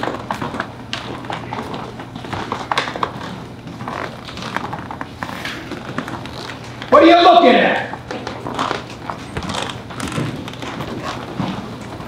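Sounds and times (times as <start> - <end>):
footsteps on hard stage floor: 0.0 - 7.0, 7.6 - 12.0
steady low hum: 0.0 - 12.0.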